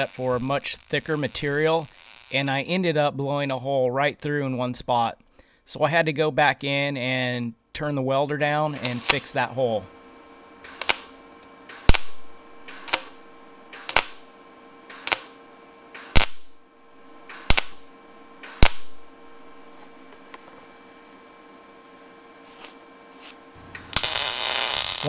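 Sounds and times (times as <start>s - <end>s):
mig welder popping: 0.0s - 2.7s, 8.7s - 9.5s, 10.6s - 20.7s, 23.6s - 25.0s
continuous weld crackling: 0.0s - 2.8s, 8.8s - 9.5s, 10.6s - 14.3s, 14.9s - 15.4s, 16.0s - 16.5s, 17.2s - 19.1s, 23.6s - 25.0s
faint steady hum: 0.0s - 25.0s.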